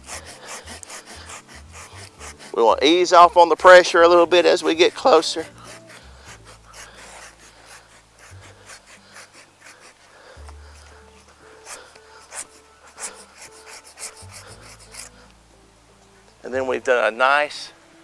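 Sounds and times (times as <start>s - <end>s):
hand saw rasping through branch: 0.0s - 15.3s.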